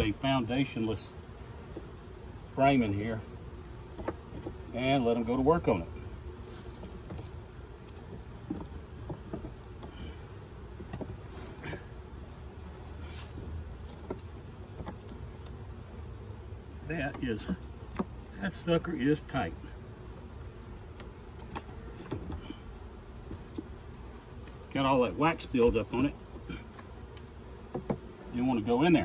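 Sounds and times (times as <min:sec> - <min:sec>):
bees buzzing: 0:00.0 - 0:29.0
wooden hive frames clicking and scraping: 0:00.0 - 0:29.0.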